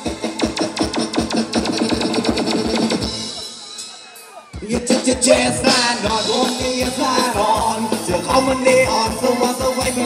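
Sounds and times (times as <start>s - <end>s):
dance band playing instrumental: 0.0s - 10.0s.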